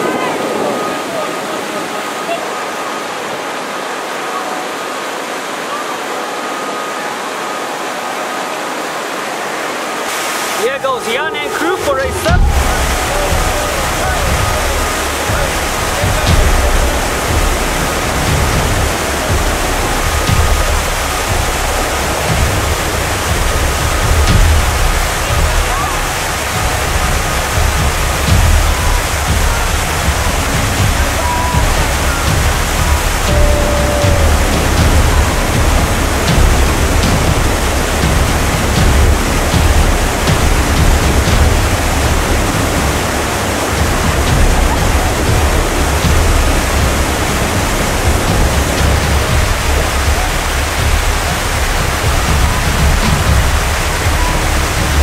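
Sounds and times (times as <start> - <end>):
river rapids rushing: 0.0 - 55.0.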